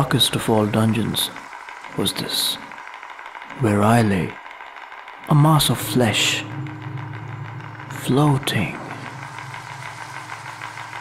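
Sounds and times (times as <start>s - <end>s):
fast ticking pulse: 0.0s - 11.0s
low electronic drone: 0.0s - 11.0s.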